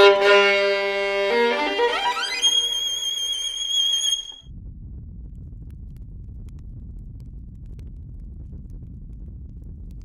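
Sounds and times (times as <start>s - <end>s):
high violin note: 0.0s - 4.4s
steady low rumble: 4.3s - 10.0s.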